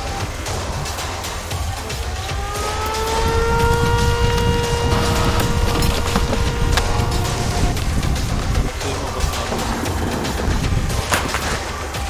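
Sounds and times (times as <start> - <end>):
pulsing low rumble: 0.0 - 11.2
machine whine rising in pitch: 1.5 - 9.6.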